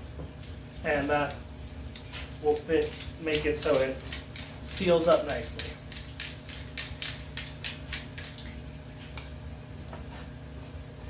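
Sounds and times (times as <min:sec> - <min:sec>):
small hard parts clicking: 0:01.9 - 0:08.5.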